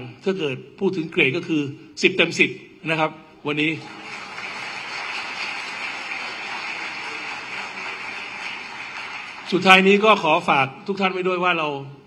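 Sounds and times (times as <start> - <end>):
audience applauding: 3.7 - 10.3.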